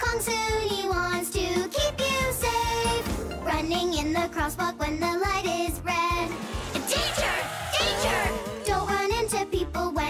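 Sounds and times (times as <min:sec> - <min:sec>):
upbeat children's song music: 0:00.0 - 0:10.0.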